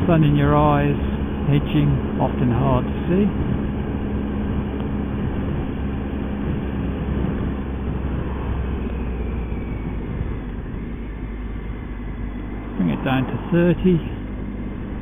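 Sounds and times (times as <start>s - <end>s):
motorcycle engine hum: 0.0s - 15.0s
rushing wind and road noise: 0.0s - 15.0s.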